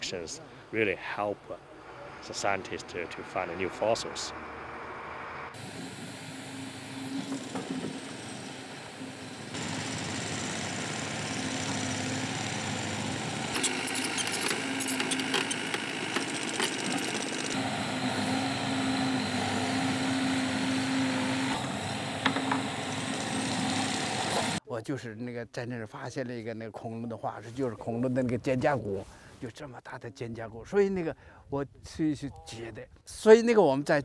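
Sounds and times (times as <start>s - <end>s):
excavator engine running: 4.4s - 24.6s.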